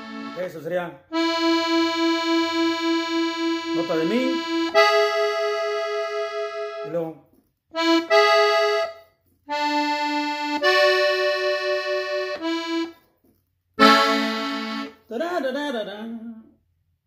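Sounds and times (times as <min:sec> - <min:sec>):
accordion playing held chords: 0:00.0 - 0:07.1, 0:07.8 - 0:13.1, 0:13.8 - 0:15.1
man's voice: 0:00.2 - 0:01.0, 0:03.8 - 0:04.4, 0:15.1 - 0:16.5.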